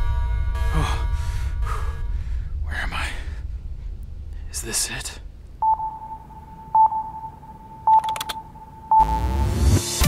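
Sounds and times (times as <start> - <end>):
short electronic beeps: 5.6 - 9.3.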